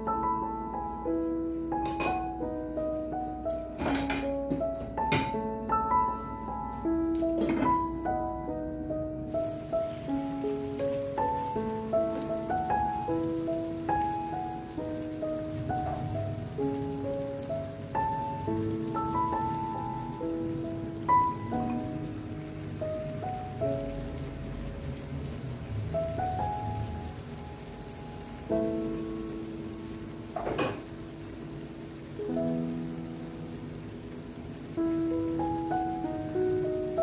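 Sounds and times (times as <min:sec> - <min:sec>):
piano melody: 0:00.0 - 0:37.0
vegetables sizzling in a pan: 0:09.2 - 0:37.0.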